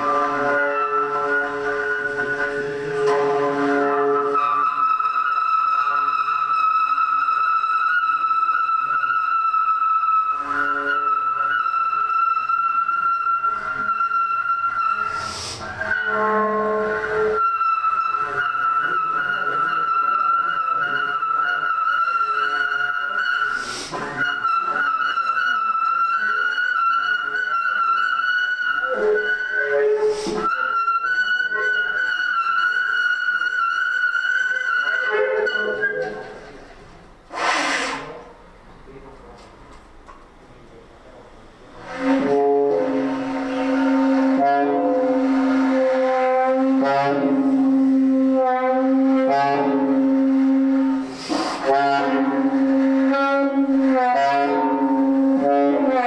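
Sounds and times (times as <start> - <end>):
saxophone long high note: 0.0 - 32.4, 41.7 - 56.0
saxophone breathy bursts: 15.0 - 15.8, 23.4 - 24.2, 30.0 - 30.5, 37.3 - 38.2, 50.6 - 52.8.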